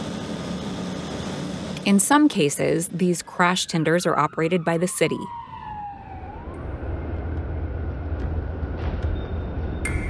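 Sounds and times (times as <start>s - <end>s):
fire truck siren: 3.1s - 8.8s
truck engine rumbling: 5.3s - 10.0s.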